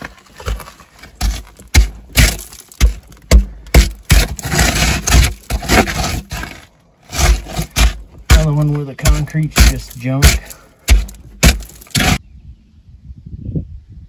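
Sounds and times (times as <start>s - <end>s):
boots scuffing on dirt and concrete: 0.0s - 12.2s.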